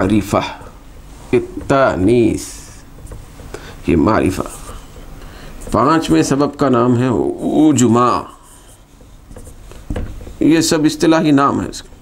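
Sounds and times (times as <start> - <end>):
marker scratching on whiteboard: 0.0 - 6.4, 7.4 - 12.0
soft knock: 9.0 - 10.4.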